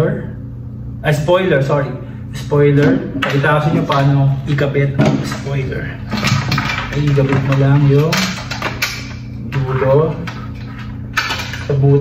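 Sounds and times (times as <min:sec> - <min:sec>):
plastic handling and scraping: 0:03.2 - 0:12.0.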